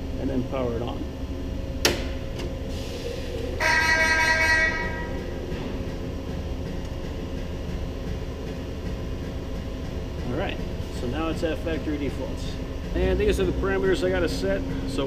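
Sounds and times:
low machinery hum: 0.0s - 15.0s
loud horn-like tone: 3.6s - 5.3s.

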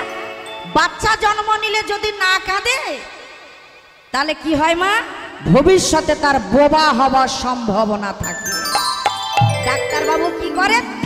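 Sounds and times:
sharp percussion strikes: 8.2s - 11.0s
musical accompaniment: 8.3s - 11.0s.

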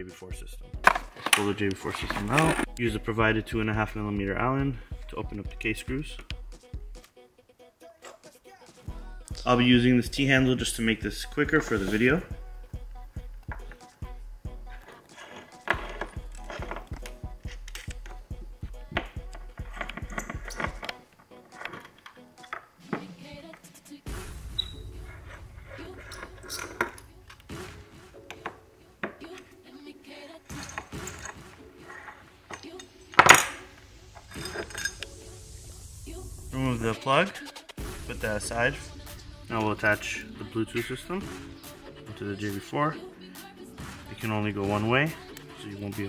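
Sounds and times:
background music: 0.0s - 46.0s
small metal clicks and clinks: 34.3s - 35.1s.

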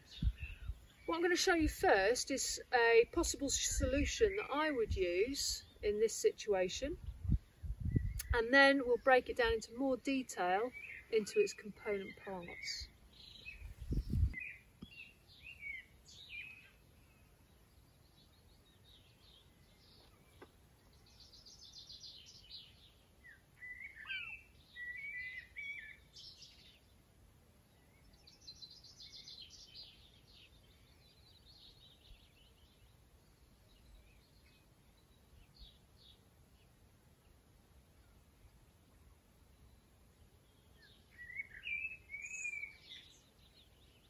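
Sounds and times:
small birds chirping and trilling: 0.0s - 1.8s, 9.0s - 44.0s.

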